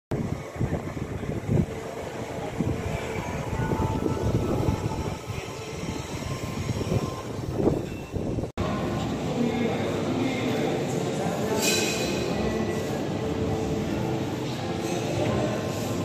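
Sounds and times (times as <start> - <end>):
gusty wind buffeting microphone: 0.1 - 8.5.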